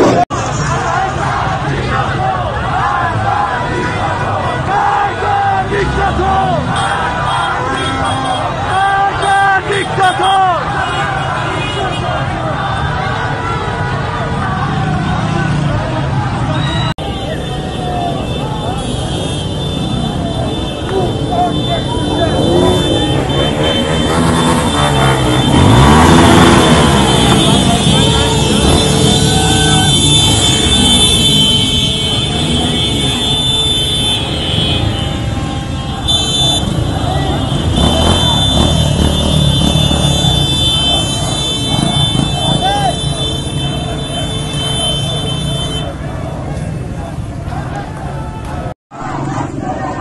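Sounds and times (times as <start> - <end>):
crowd voices: 0.0 - 50.0
motor scooter engines: 0.0 - 50.0.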